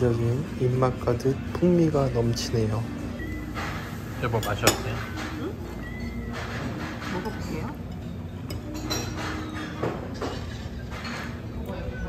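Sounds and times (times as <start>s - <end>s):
background music: 0.0s - 12.0s
fork and knife clinking on plate: 6.1s - 11.6s.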